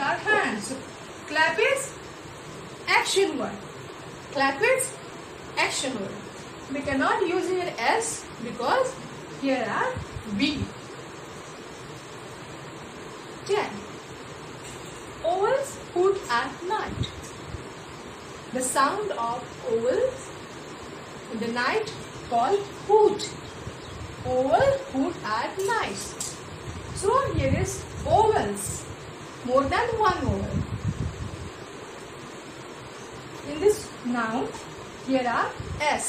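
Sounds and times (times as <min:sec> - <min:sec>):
background hiss: 0:00.0 - 0:36.0.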